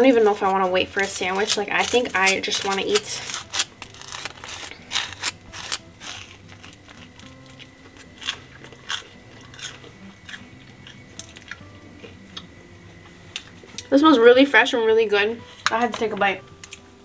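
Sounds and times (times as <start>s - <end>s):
crunching and chewing toast: 0.5s - 13.9s
knife scraping butter on toast: 1.0s - 11.0s.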